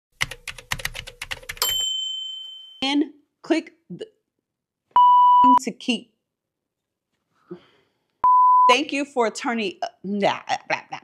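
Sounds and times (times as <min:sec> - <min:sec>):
carriage-return bell ding: 0:01.6 - 0:02.8.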